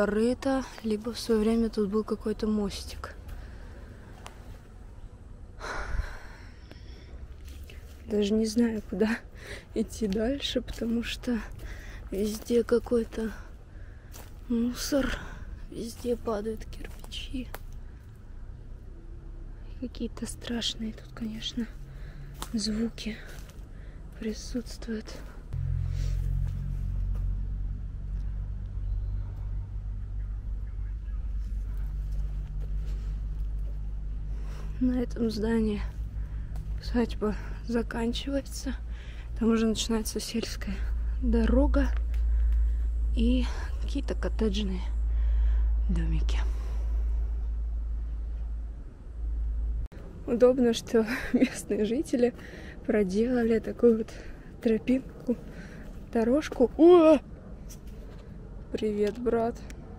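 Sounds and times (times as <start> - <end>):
low steady rumble: 0.0 - 59.9
steady low drone: 0.0 - 59.9.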